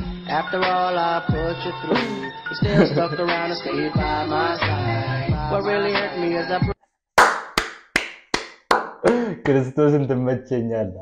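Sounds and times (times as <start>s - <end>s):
man's voice: 0.6s - 6.8s, 9.0s - 11.0s
hand claps with room echo: 7.2s - 9.2s.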